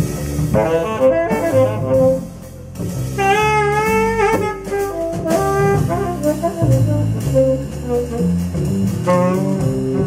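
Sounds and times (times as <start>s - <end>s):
double bass plucking: 0.0s - 10.0s
tenor saxophone solo: 0.5s - 10.0s.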